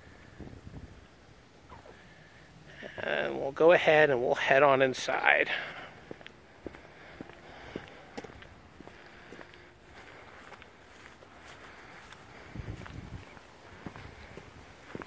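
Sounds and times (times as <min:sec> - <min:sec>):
footsteps on concrete: 0:05.5 - 0:15.0.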